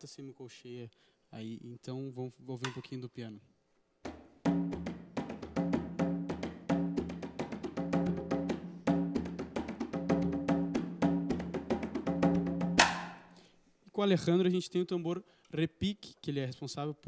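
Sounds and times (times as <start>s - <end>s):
low drum rhythm: 4.5s - 13.2s.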